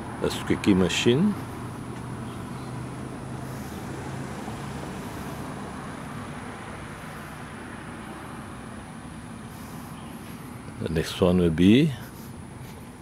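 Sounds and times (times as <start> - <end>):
low vehicle engine hum: 0.0 - 13.0
road traffic noise: 0.0 - 13.0.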